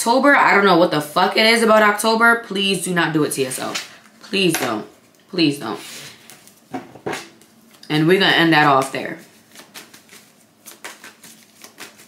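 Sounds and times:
cards being shuffled: 0:08.8 - 0:12.0.

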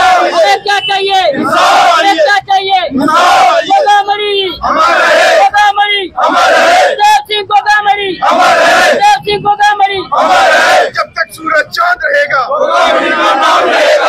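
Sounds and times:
man shouting slogans: 0:00.0 - 0:14.0.

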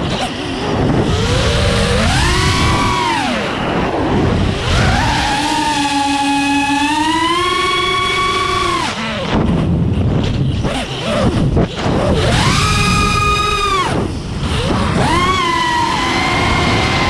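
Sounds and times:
drone motors whining: 0:00.0 - 0:17.0.

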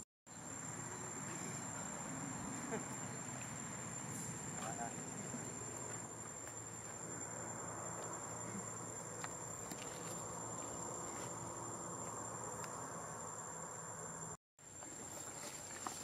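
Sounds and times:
steady background hiss: 0:00.3 - 0:16.0.

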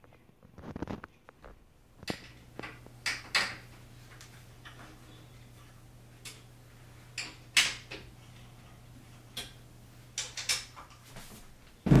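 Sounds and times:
faint steady hum: 0:00.0 - 0:12.0
clicks and knocks of wooden parts: 0:10.2 - 0:11.1.

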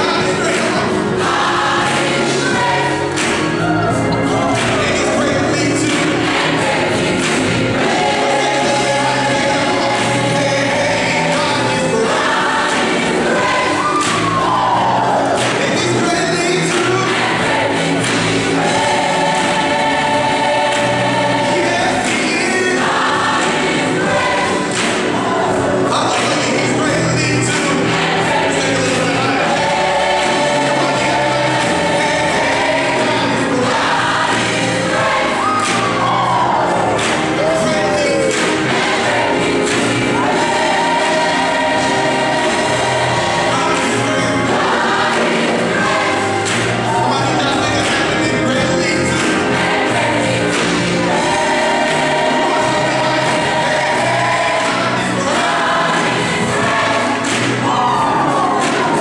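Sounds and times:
gospel choir singing: 0:00.0 - 0:59.0
live band playing: 0:00.0 - 0:59.0.

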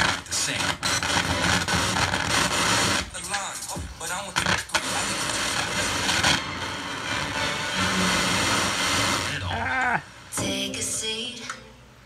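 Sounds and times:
radio static: 0:00.0 - 0:10.0
radio broadcast voice: 0:02.9 - 0:06.3, 0:09.1 - 0:10.0.

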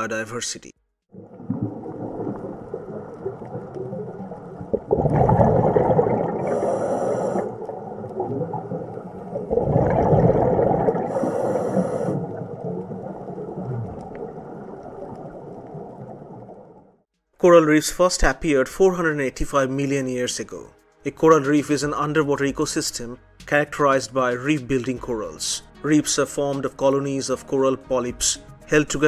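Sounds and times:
steady underwater rumble: 0:01.1 - 0:17.0
scuba regulator breathing: 0:06.3 - 0:07.9, 0:10.9 - 0:12.6.

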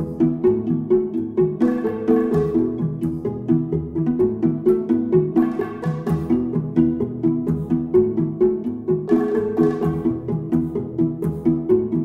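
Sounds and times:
plucked notes over bouncy beat: 0:00.0 - 0:12.0.

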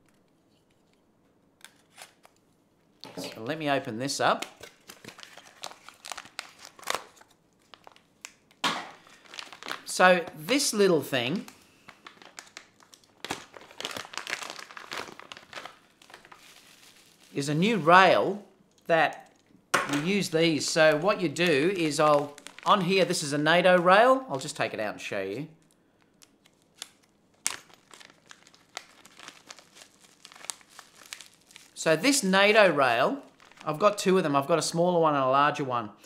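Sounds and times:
plastic bag crinkling: 0:04.5 - 0:24.6, 0:25.6 - 0:34.2.

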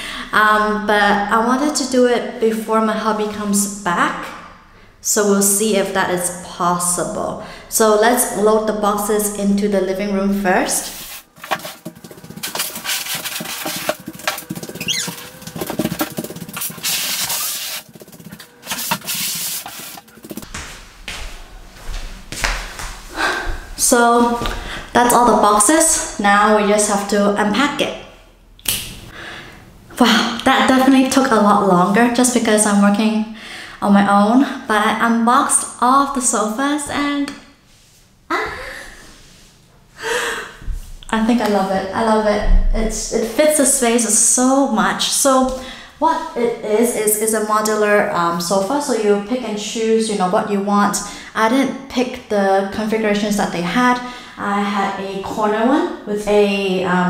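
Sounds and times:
cardboard boxes scraping on wood floor: 0:10.8 - 0:20.5
boxes knocking and thudding: 0:11.3 - 0:20.5
woman gasping: 0:40.0 - 0:40.6.

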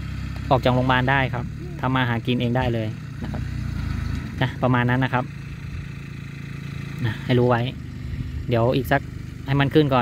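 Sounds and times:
low engine rumble: 0:00.0 - 0:10.0
person speaking: 0:01.4 - 0:02.8.

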